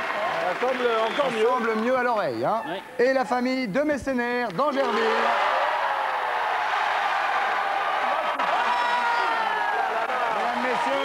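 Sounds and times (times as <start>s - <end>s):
audience applauding and cheering: 0.0s - 2.3s, 4.6s - 11.0s
shouts and whoops: 4.7s - 11.0s.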